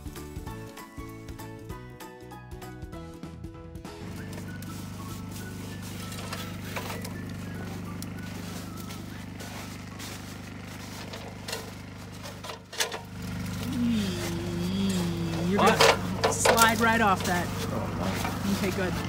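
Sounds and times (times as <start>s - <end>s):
steady low drone: 4.0s - 19.0s
person speaking: 13.6s - 19.0s.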